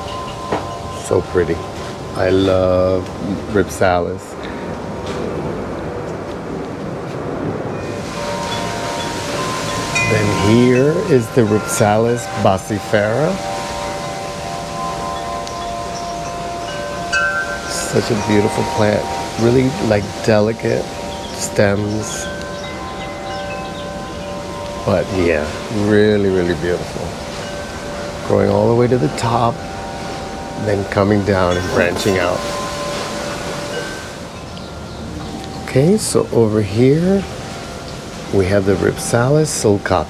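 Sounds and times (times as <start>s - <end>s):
wind chimes ringing: 0.0s - 6.2s, 6.9s - 40.0s
wind rushing on microphone: 0.0s - 40.0s.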